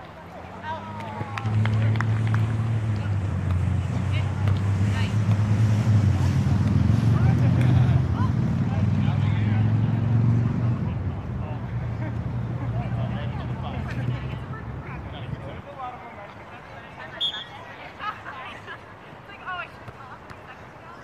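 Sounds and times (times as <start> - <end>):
distant voices of people playing: 0.0 - 21.0.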